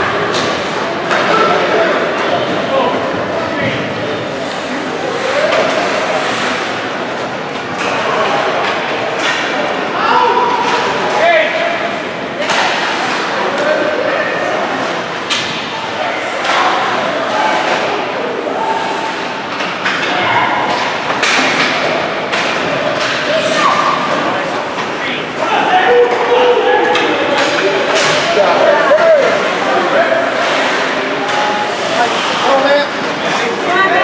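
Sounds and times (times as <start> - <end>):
ice hockey game background: 0.0 - 34.0
spectators' voices: 0.0 - 34.0.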